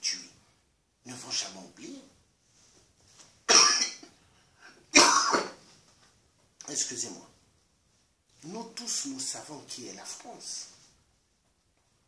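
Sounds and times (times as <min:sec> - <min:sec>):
man coughing: 0:03.5 - 0:04.2, 0:04.9 - 0:05.6.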